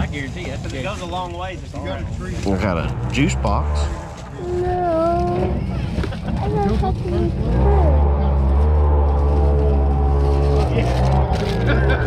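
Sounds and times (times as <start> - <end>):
off-road vehicle engine running: 0.0 - 12.0.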